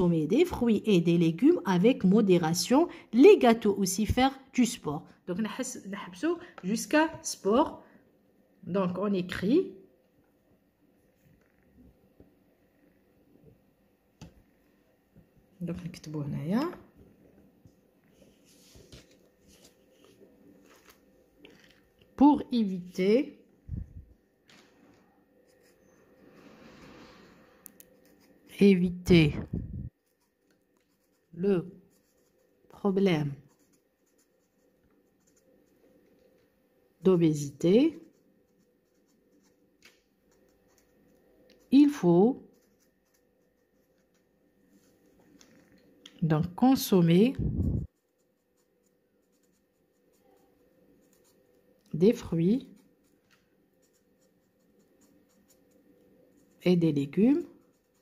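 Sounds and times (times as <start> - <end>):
marker scratching on paper: 33.3 - 35.8, 41.7 - 44.2, 47.6 - 51.4, 52.5 - 58.0.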